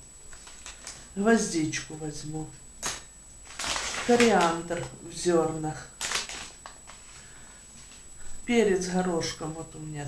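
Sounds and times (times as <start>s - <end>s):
hands rustling paper: 2.8s - 5.0s, 6.0s - 8.0s.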